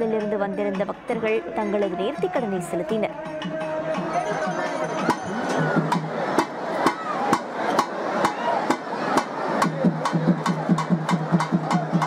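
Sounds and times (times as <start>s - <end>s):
sharp percussion strikes: 3.1s - 12.0s.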